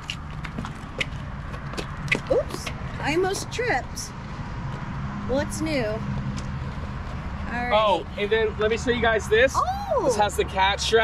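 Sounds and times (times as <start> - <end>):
footsteps on asphalt: 0.0 - 3.4, 4.2 - 5.2, 6.0 - 7.8.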